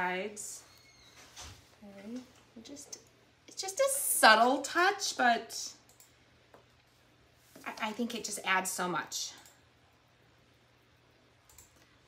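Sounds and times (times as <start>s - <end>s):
low steady hum: 0.0s - 12.0s
faint small clicks: 5.8s - 6.9s, 11.4s - 11.9s.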